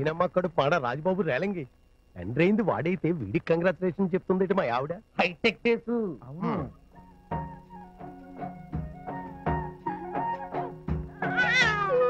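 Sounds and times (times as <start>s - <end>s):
steady drum beat: 7.2s - 11.6s.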